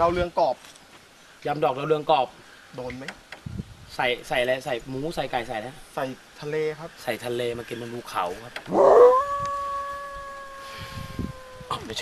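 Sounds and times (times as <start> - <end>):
long howl: 8.7 - 12.0.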